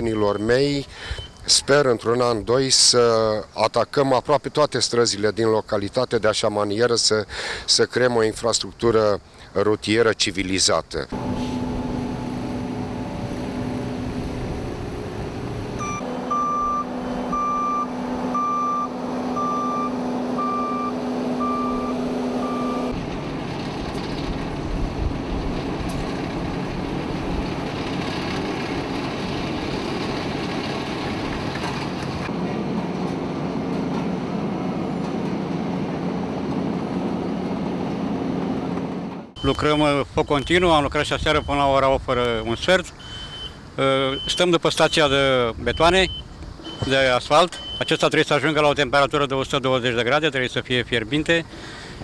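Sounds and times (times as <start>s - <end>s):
heavy vehicle engines running: 11.1s - 52.0s
reversing alarm beeping: 15.8s - 23.0s, 39.4s - 41.7s, 43.0s - 48.2s.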